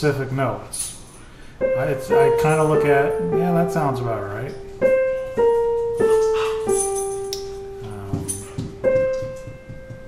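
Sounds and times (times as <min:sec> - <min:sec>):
digital piano notes: 0:01.2 - 0:10.0.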